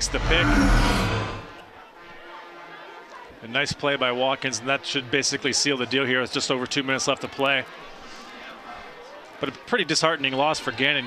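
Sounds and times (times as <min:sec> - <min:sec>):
rushing swoosh: 0:00.0 - 0:01.6.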